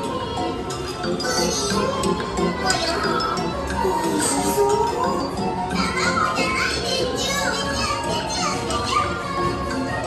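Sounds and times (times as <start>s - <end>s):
background music: 0.0s - 10.0s
high-pitched voices: 0.0s - 10.0s.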